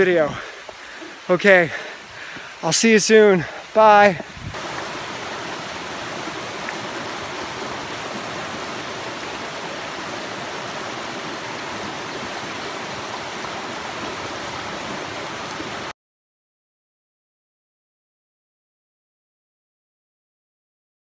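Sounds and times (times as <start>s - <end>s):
brook running over stones: 0.0s - 15.9s.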